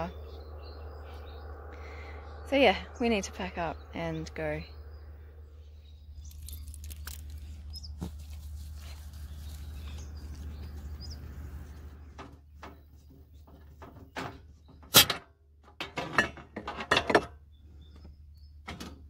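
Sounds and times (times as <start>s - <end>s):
high bird chirps: 0.0s - 8.1s, 9.2s - 12.1s
steady low hum: 0.0s - 13.9s.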